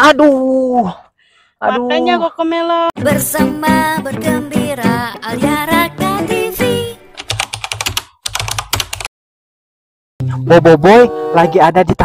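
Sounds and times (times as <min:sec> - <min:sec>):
fast keyboard typing clicks: 0:07.2 - 0:09.1.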